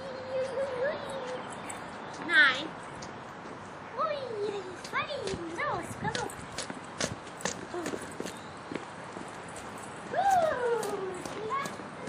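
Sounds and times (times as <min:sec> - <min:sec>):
footsteps on stone path: 0:04.8 - 0:10.0.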